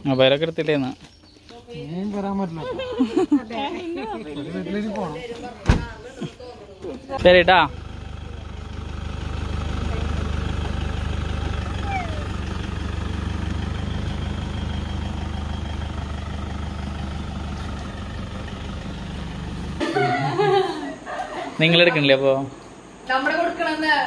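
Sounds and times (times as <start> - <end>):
diesel engine running: 7.2 - 24.0.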